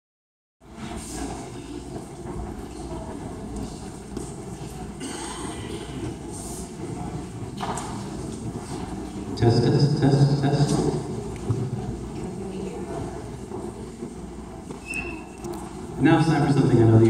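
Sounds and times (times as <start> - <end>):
murmur of voices: 0.7 - 17.0.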